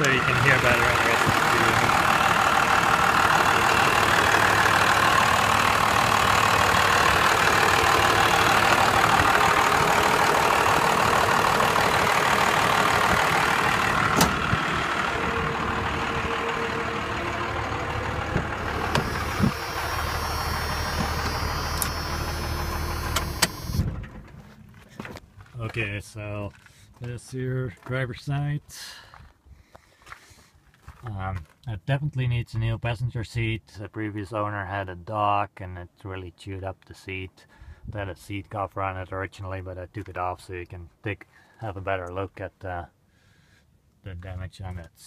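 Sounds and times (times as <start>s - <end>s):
diesel engine idling: 0.0s - 24.9s
car hood slamming shut: 14.2s - 14.5s.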